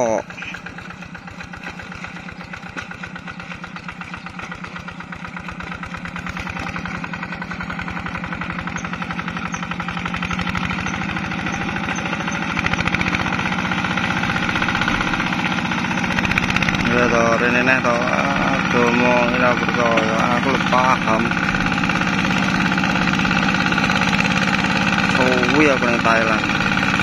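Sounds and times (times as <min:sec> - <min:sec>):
diesel engine running: 0:00.0 - 0:27.0.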